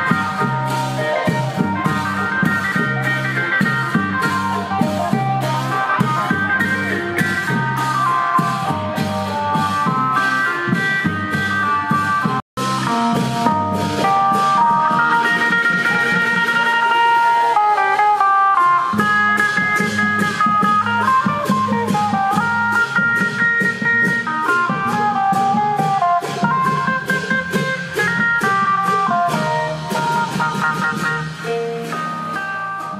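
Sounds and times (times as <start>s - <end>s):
long drums beat: 0.0s - 32.9s.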